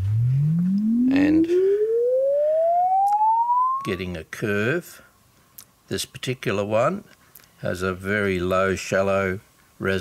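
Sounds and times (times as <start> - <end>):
sine tone sweeping upward: 0.0 - 4.0.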